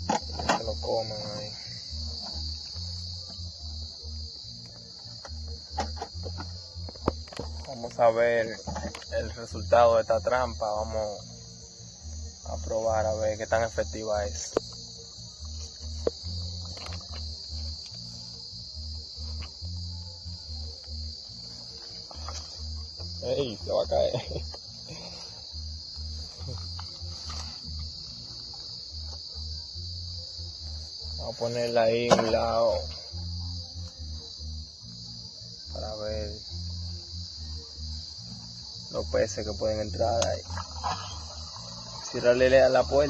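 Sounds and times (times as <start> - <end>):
background music bass: 0.0 - 43.0
crickets chirping: 0.0 - 43.0.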